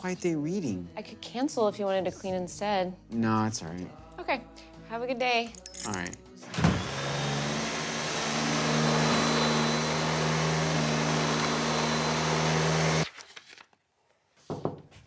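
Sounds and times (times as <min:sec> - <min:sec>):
vacuum cleaner motor drone: 0:06.4 - 0:13.0.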